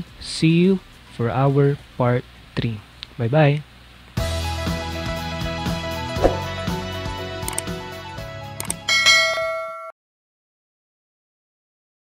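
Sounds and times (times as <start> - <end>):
background music: 4.2 - 9.4
bright bell ding: 8.9 - 9.9.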